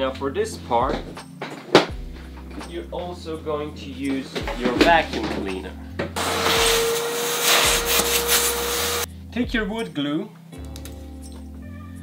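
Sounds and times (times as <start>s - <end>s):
vacuum cleaner running: 6.2s - 9.1s.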